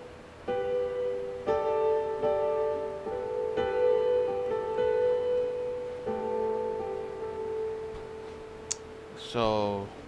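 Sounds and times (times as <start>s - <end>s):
electronic keyboard chords: 0.0s - 9.8s.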